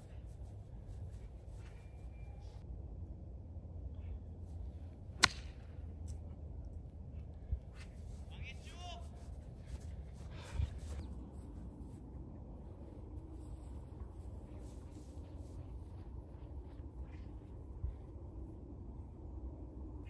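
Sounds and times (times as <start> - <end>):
golf club striking ball: 5.2 - 5.6
low background rumble: 9.3 - 20.0.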